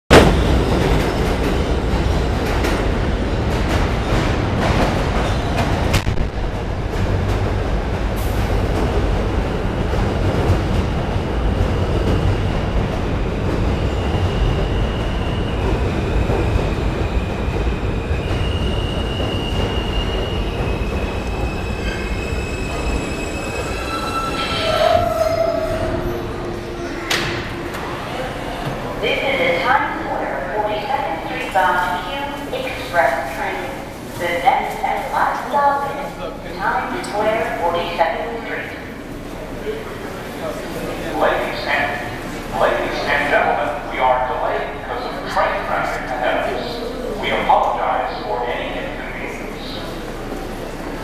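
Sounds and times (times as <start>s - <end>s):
subway train rushing and rattling: 0.1s - 51.0s.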